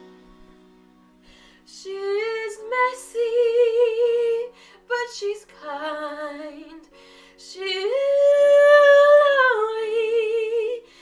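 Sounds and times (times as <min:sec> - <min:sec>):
quick breath: 0:01.1 - 0:01.7, 0:06.9 - 0:07.4.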